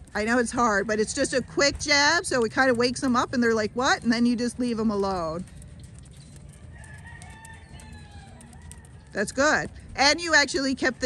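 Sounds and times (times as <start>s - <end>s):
rooster crowing faintly: 6.6s - 9.2s.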